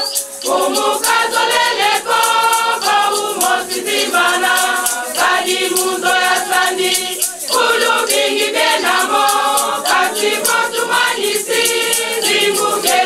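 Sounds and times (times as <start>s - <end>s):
shaken hand percussion: 0.0s - 13.0s
women's choir singing: 0.0s - 13.0s.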